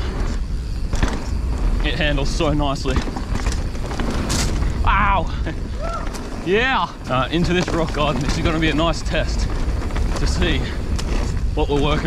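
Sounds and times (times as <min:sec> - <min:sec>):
bike tyres rolling on dirt: 0:00.0 - 0:12.0
wind buffeting microphone: 0:00.0 - 0:12.0.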